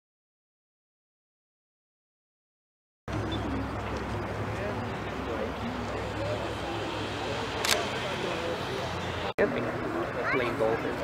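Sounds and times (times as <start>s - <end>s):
faint indistinct voices: 3.1s - 11.0s.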